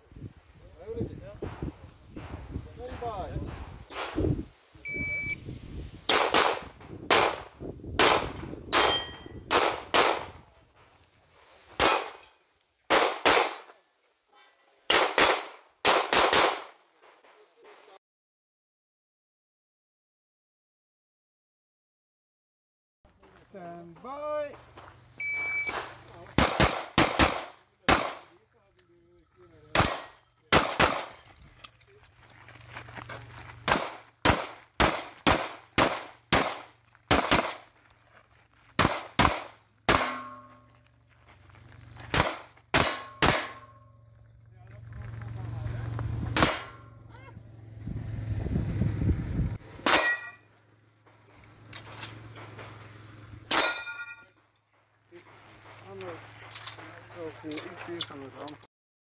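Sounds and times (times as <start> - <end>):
shot timer beep: 4.9 - 5.4, 25.2 - 25.7
pistol shots: 6.1 - 10.4, 11.8 - 12.2, 12.9 - 13.7, 14.9 - 16.8, 26.4 - 28.3, 29.7 - 31.2, 33.6 - 37.7, 38.8 - 40.6, 42.1 - 43.8, 46.3 - 46.9
steel target ringing: 8.8 - 9.4, 29.8 - 30.2, 39.9 - 40.8, 42.8 - 44.0, 49.8 - 50.5, 53.5 - 54.4.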